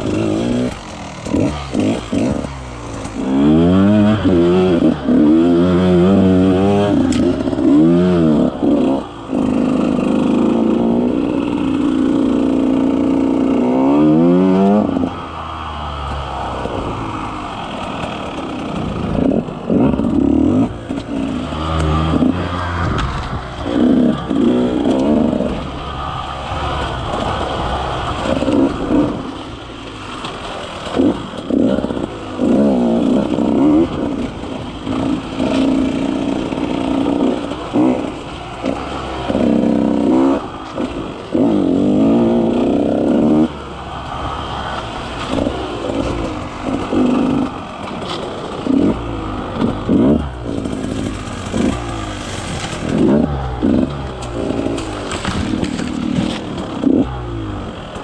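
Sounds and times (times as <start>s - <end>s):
two-stroke engine revving: 0.0s - 58.0s.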